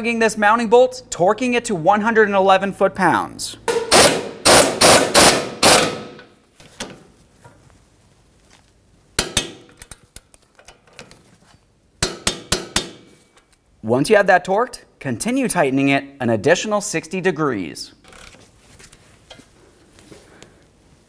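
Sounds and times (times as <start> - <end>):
impact wrench hammering: 3.7 - 6.3, 9.2 - 9.8, 12.0 - 13.2.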